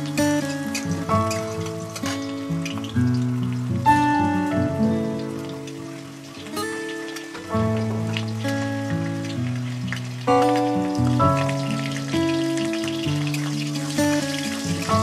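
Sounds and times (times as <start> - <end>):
background music of held chords: 0.0 - 15.0
potatoes sizzling in oil: 0.0 - 15.0.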